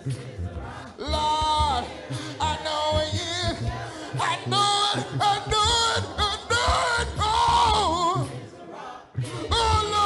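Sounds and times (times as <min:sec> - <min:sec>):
gospel singing voice: 0:00.0 - 0:10.0.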